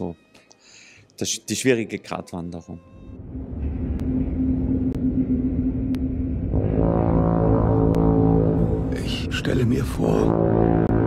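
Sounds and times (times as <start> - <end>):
deep horn-like tone: 3.0 - 11.0
deep rumble: 3.2 - 11.0.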